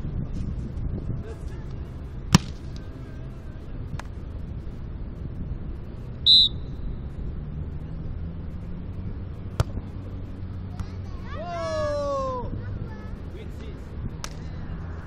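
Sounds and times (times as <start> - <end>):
low background noise: 0.0 - 15.0
hands slapping volleyball: 14.2 - 14.5.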